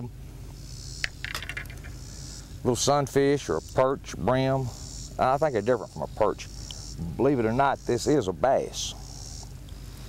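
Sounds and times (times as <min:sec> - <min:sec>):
high-pitched insect trill: 0:00.6 - 0:09.6.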